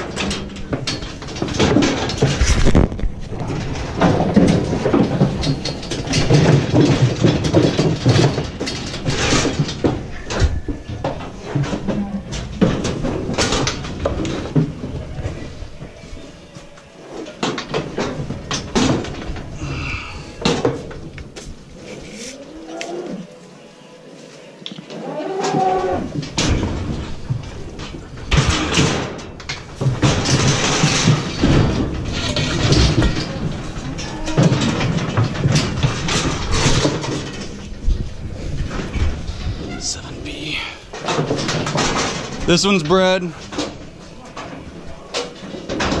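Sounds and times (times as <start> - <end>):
steel chute clanging and rattling: 0.0 - 21.9, 25.4 - 46.0
cow lowing: 21.8 - 23.4.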